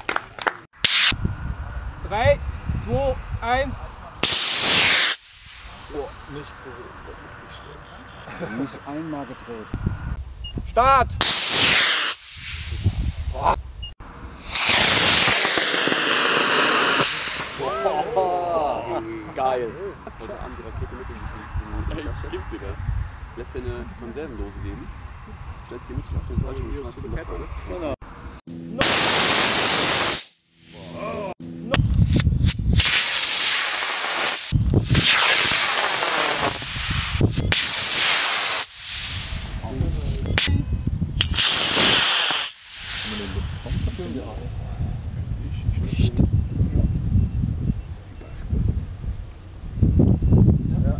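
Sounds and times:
rocket motor hissing: 0.8s - 1.3s, 2.8s - 6.5s, 11.2s - 13.5s, 14.2s - 17.8s, 28.2s - 31.0s, 32.0s - 39.8s, 41.2s - 45.1s
excited voices of onlookers: 17.4s - 20.2s.

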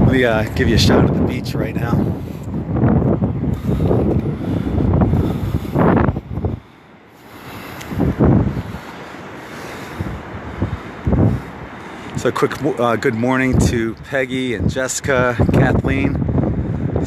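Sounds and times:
surf washing onto beach: 0.0s - 17.0s
wind buffeting microphone: 0.0s - 17.0s.

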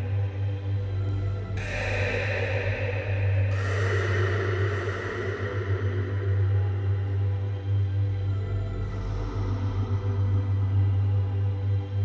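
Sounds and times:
low electronic drone: 0.0s - 12.0s
hissing cymbal-like wash: 1.4s - 6.9s.

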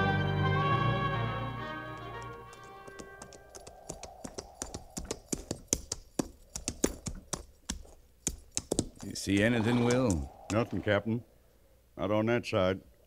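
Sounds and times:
orchestral music: 0.0s - 3.2s
horse hooves clopping on hard ground: 1.9s - 10.8s.

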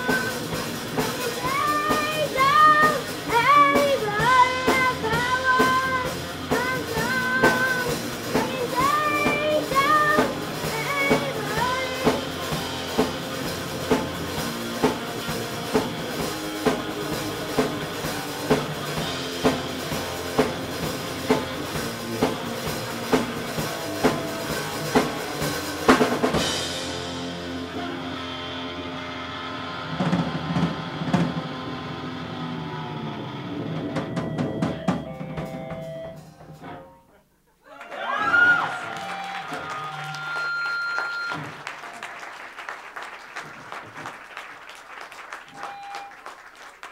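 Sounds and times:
drum and cymbal hits: 0.0s - 28.8s
live rock band playing: 0.0s - 37.2s, 45.3s - 46.6s.

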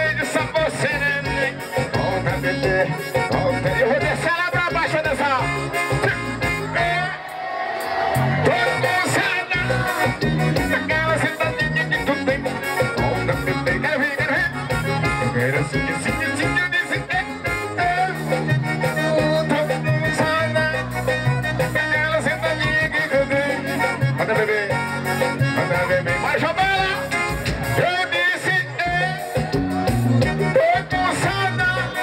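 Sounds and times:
man singing into microphone: 0.0s - 7.3s, 8.4s - 32.0s
live band dance music: 0.0s - 32.0s.

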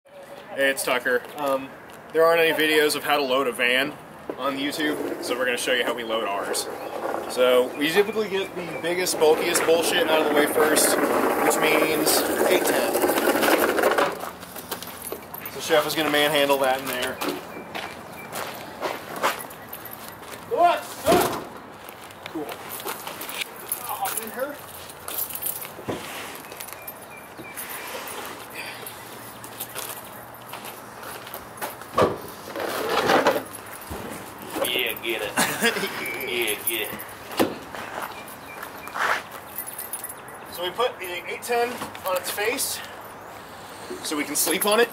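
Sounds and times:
footsteps: 4.3s - 35.0s, 36.0s - 40.2s.

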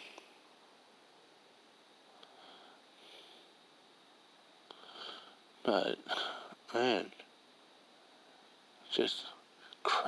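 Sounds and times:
faint breaths: 2.0s - 3.7s, 4.6s - 6.7s.

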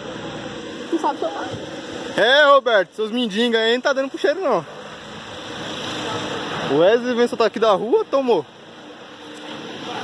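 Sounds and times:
steady outdoor hiss: 0.0s - 10.0s.

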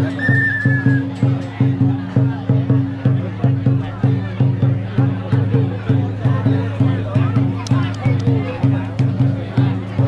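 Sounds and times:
drum beaten in steady rhythm: 0.0s - 10.0s
whistle trilling: 0.2s - 1.1s.

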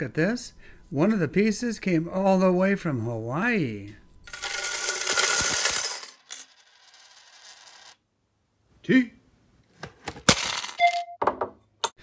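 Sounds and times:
coins clinking onto a pile: 4.3s - 8.0s, 10.3s - 11.0s.

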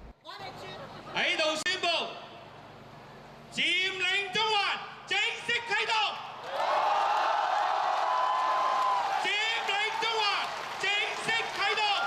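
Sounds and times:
large crowd cheering and shouting: 6.4s - 12.0s.

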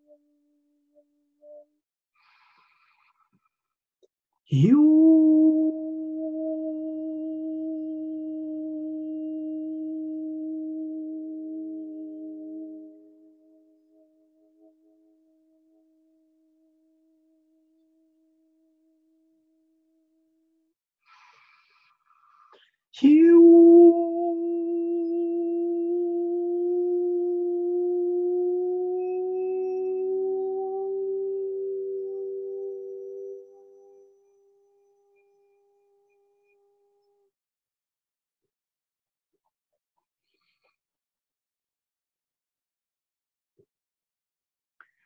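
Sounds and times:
man toning a sustained note: 4.5s - 19.6s, 23.0s - 37.1s
sustained ringing tone: 23.4s - 37.1s.

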